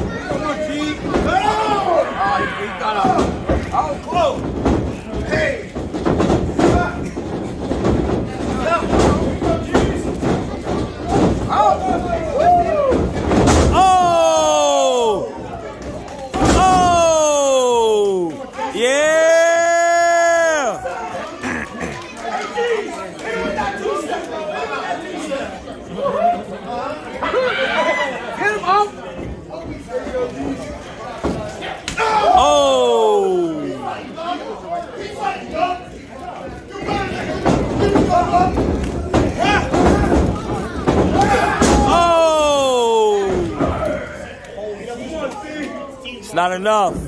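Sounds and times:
crowd shouting and yelling: 0:00.0 - 0:04.5, 0:10.7 - 0:36.0, 0:36.7 - 0:47.0.

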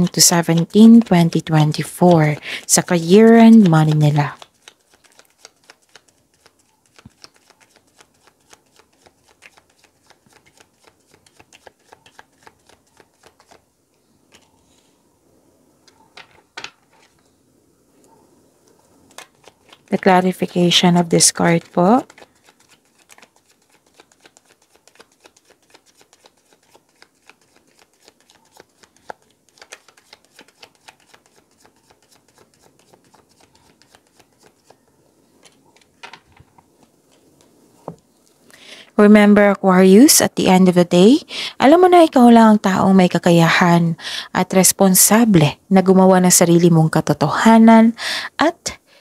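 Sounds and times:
cards being shuffled: 0:00.0 - 0:13.6, 0:19.0 - 0:38.4.

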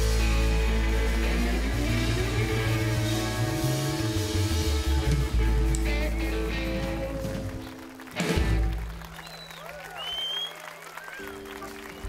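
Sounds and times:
drum and cymbal hit: 0:00.0 - 0:07.2
live band chord: 0:00.0 - 0:09.1
audience whistling: 0:00.0 - 0:12.0
audience applause: 0:00.8 - 0:12.0.

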